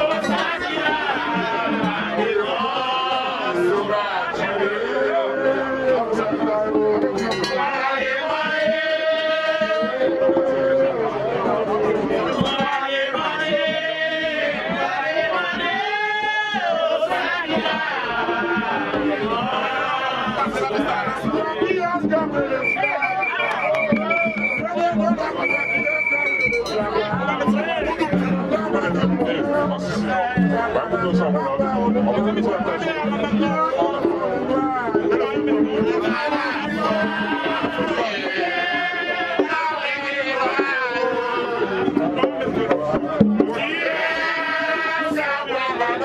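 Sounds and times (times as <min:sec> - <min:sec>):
crowd chatter: 0:00.0 - 0:46.0
group of voices singing: 0:00.0 - 0:46.0
high steady tone: 0:22.5 - 0:27.9.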